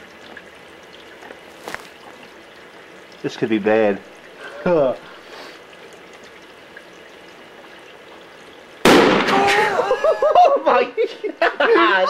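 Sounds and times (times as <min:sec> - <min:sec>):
bottle bursting with loud bang: 0:08.8 - 0:09.8
people shouting in surprise: 0:09.2 - 0:10.0.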